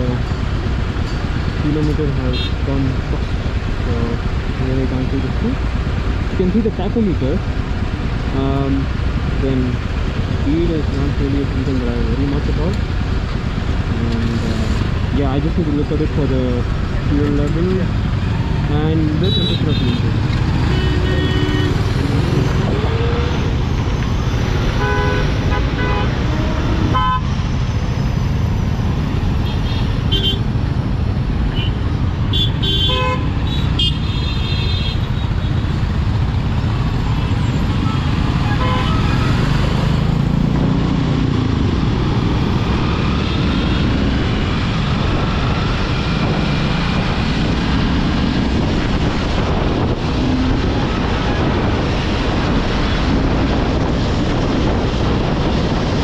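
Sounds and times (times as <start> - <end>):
vehicle horns honking: 19.3 - 22.0, 24.7 - 27.3, 29.4 - 30.5, 31.5 - 35.4, 37.1 - 39.6
wind rush: 35.4 - 56.0.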